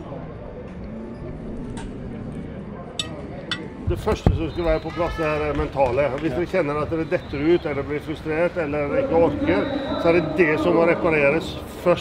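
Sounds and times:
murmur of distant voices: 0.0 - 12.0.

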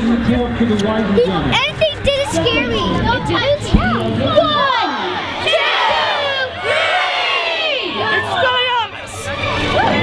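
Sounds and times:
children shouting and cheering: 1.6 - 10.0.

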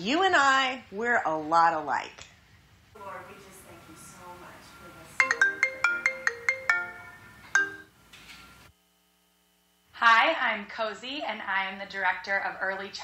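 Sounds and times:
phone ringtone marimba notes: 4.9 - 8.0.

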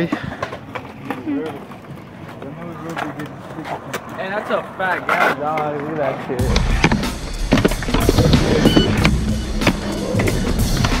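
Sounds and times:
skateboard clacks: 0.0 - 11.0
skateboard grinding on ledge: 3.0 - 11.0
background music: 6.4 - 11.0.

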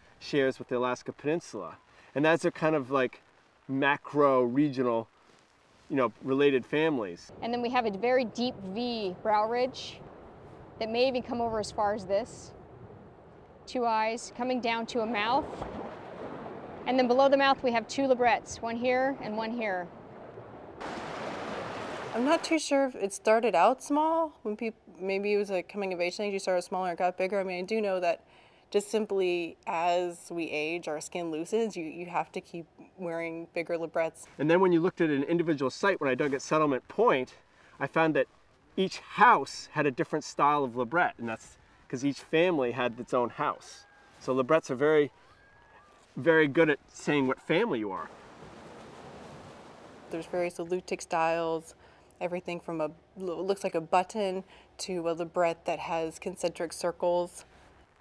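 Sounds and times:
faint hiss: 0.0 - 7.3.

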